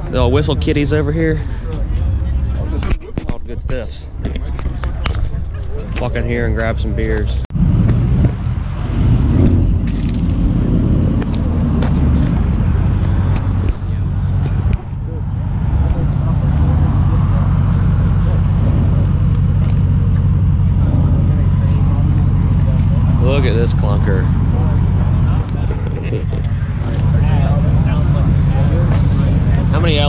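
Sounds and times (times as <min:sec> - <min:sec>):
car engine idling: 0:00.0 - 0:03.0, 0:03.7 - 0:30.0.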